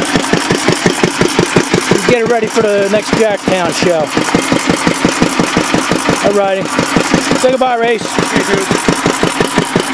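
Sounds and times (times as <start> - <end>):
old stationary engine running slow: 0.0 - 9.9.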